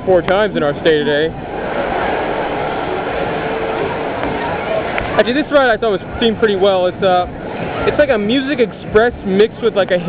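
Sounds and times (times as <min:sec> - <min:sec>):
amusement rides running: 0:00.0 - 0:10.0
crowd noise: 0:00.0 - 0:10.0.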